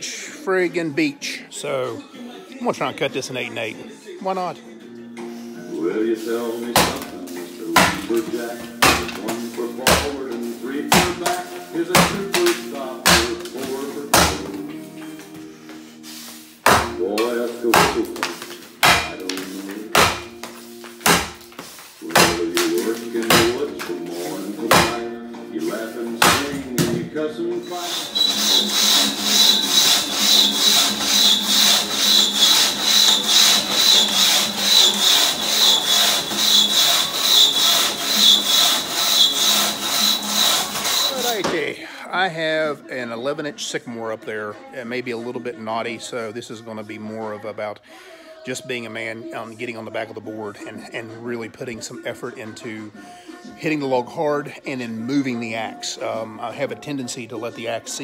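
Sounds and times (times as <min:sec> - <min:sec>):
axe chopping log: 0:06.7 - 0:07.2, 0:07.8 - 0:10.2, 0:10.9 - 0:14.5, 0:16.6 - 0:23.9, 0:24.7 - 0:25.1, 0:26.2 - 0:27.0.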